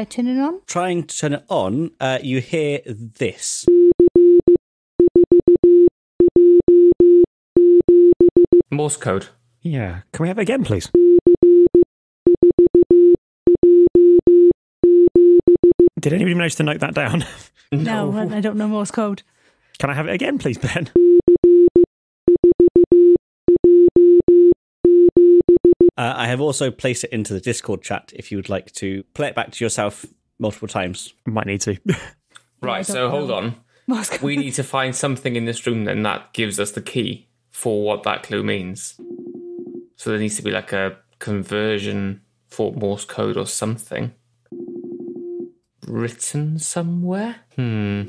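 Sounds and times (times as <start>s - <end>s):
morse code beeping: 3.7s - 8.6s, 10.9s - 15.9s, 21.0s - 25.9s.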